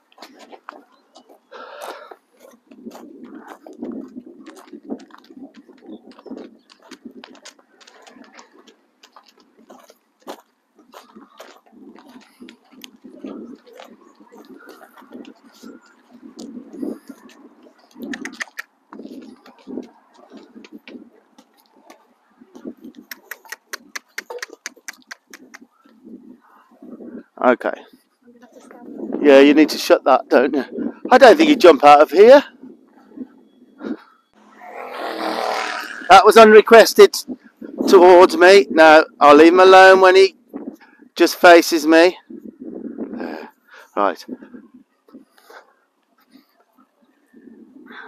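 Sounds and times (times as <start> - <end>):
horse hooves on gravel: 0.0 - 15.4
footsteps on gravel: 0.0 - 17.5.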